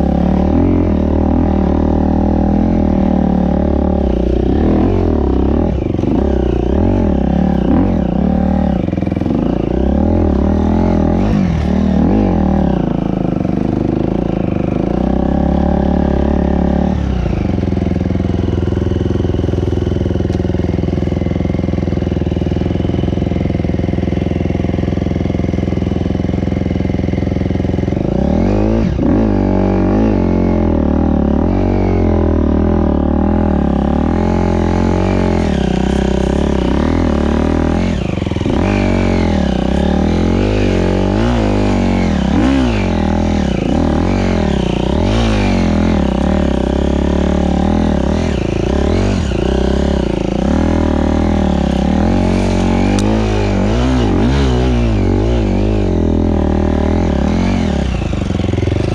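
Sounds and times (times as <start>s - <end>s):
dirt bike engine revving: 0.0s - 58.9s.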